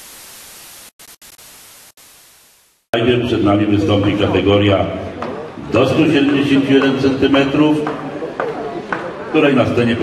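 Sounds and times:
static hiss: 0.0 - 2.9.

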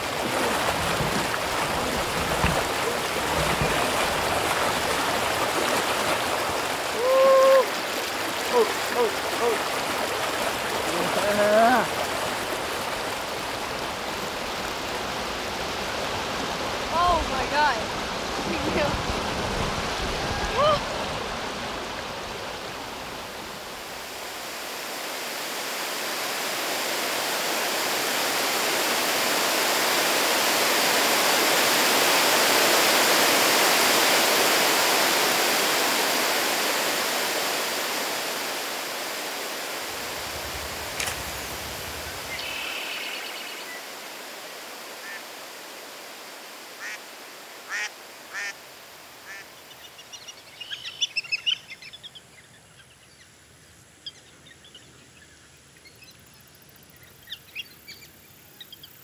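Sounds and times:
rushing river water: 0.0 - 52.4
short bird calls: 42.3 - 43.7.

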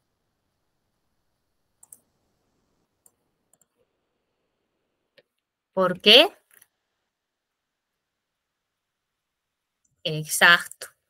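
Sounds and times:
faint computer mouse clicks: 1.8 - 2.1, 3.0 - 3.8.

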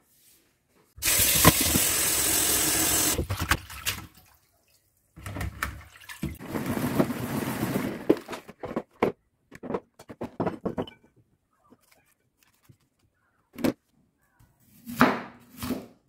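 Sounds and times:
tap water running into a bowl: 1.0 - 3.2.

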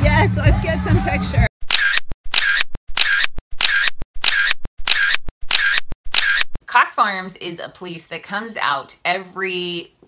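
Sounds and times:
camera shutter clicking: 1.7 - 6.5.

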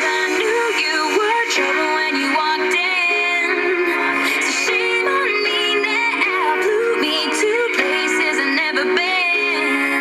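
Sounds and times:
pop song on car radio: 0.0 - 10.0.

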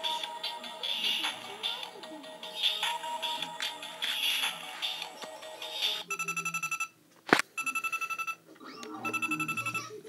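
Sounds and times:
electronic trilling beeps: 7.6 - 9.9.

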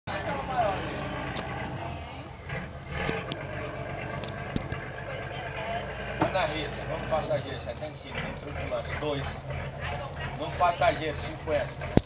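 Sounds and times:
people talking: 0.1 - 1.2, 4.9 - 11.8
boat engine droning: 0.1 - 12.0
sharp clicks and knocks: 3.0 - 5.1.

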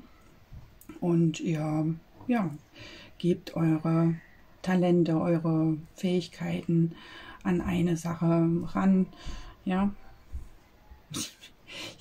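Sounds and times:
short breath sounds: 11.7 - 12.0.

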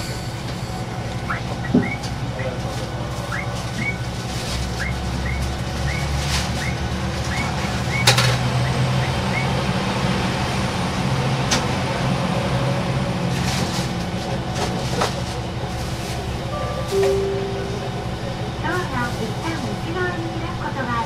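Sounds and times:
diesel railcar passing: 0.0 - 21.0.

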